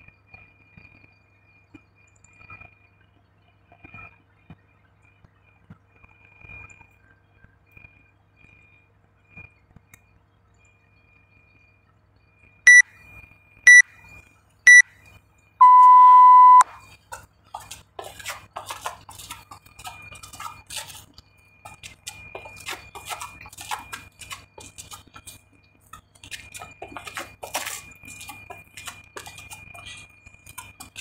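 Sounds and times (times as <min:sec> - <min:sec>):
interval timer beeps: 0:12.7 - 0:14.9, 0:15.6 - 0:16.7.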